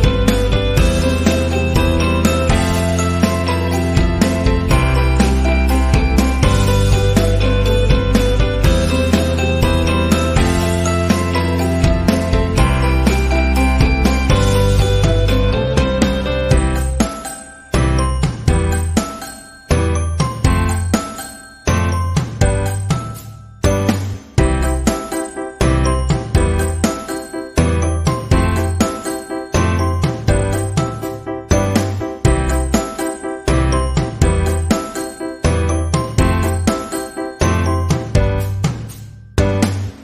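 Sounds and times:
regular bass beat: 0:00.0 - 0:17.0, 0:37.4 - 0:40.0.

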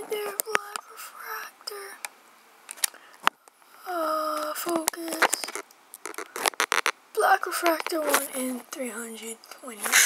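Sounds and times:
foil wrapper crinkling: 0:05.4 - 0:07.0.

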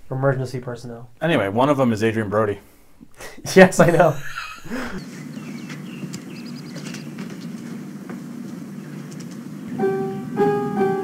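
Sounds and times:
bird chirping trill: 0:04.2 - 0:07.6
low outdoor background rumble: 0:05.0 - 0:10.9
piano music: 0:09.6 - 0:11.0.

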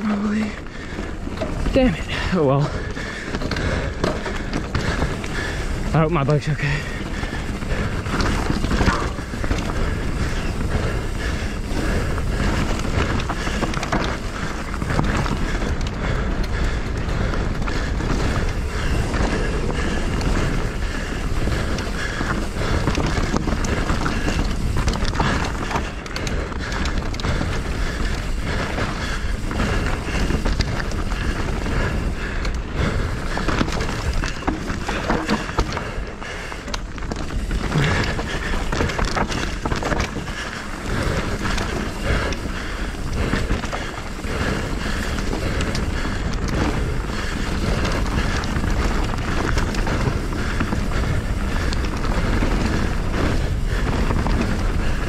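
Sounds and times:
mountain bike rattling: 0:00.0 - 0:55.0
wind buffeting microphone: 0:00.0 - 0:55.0.

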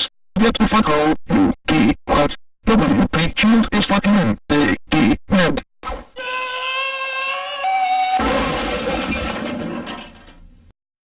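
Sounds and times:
cartoon crash with shattering glass: 0:08.2 - 0:10.5.

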